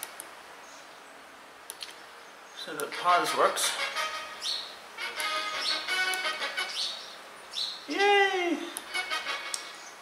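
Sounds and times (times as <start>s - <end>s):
music from small speaker: 5.0s - 6.8s.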